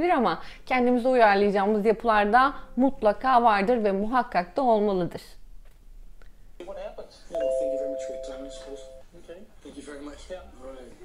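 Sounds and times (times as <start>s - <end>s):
bell-like notification chime: 7.4s - 9.0s.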